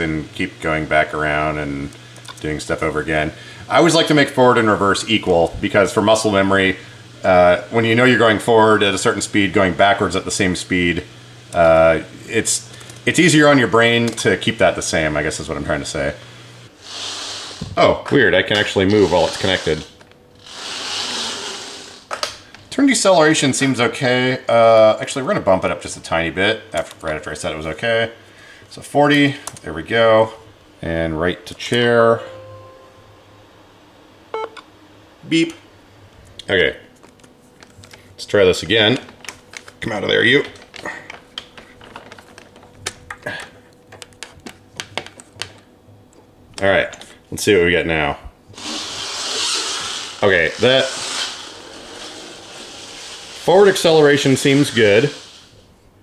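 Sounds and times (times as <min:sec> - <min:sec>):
electric motors whining: 0:16.0 - 0:22.3, 0:48.5 - 0:55.7
power wheelchair hiss: 0:16.4 - 0:17.9, 0:18.8 - 0:22.4, 0:48.6 - 0:55.8.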